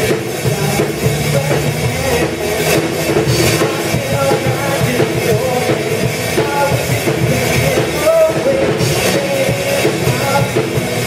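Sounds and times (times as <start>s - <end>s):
live rock band music: 0.0s - 11.0s.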